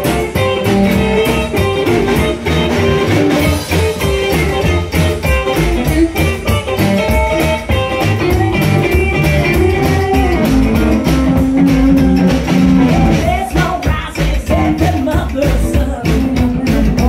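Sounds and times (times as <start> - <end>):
rockabilly band playing: 0.0 - 17.0.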